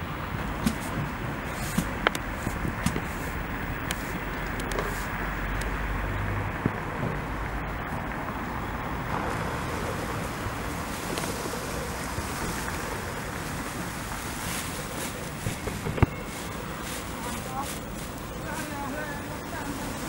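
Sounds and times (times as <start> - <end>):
distant street traffic: 0.0 - 20.0
wind on microphone: 0.0 - 20.0.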